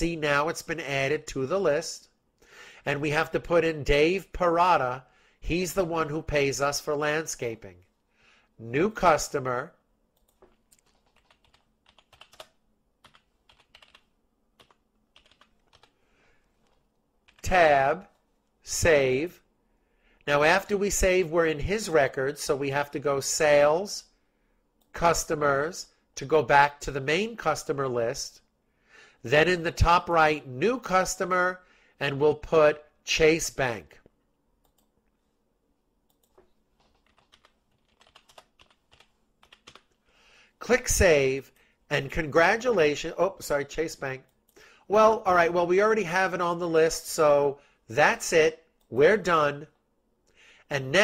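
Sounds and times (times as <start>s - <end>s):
typing on computer keyboard: 10.2s - 15.9s, 36.1s - 39.9s.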